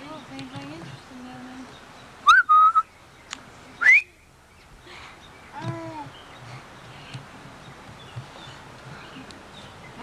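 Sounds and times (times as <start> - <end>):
person whistling: 2.3 - 2.9, 3.8 - 4.1.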